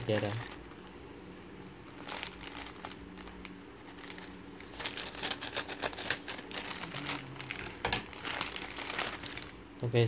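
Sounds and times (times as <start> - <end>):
plastic mailer bag crinkling: 0.0 - 0.9, 1.8 - 9.6.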